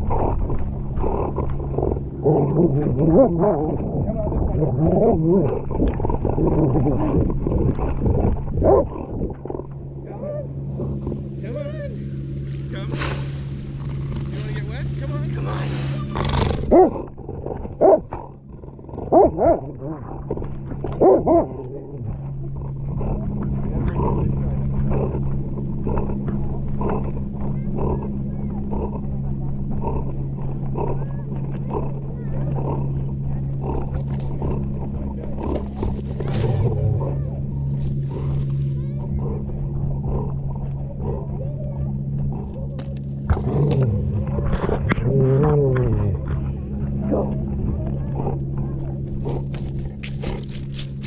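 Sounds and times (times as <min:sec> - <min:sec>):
dog growling: 0:00.0 - 0:12.0, 0:12.8 - 0:51.0
steady low hum: 0:00.0 - 0:51.0.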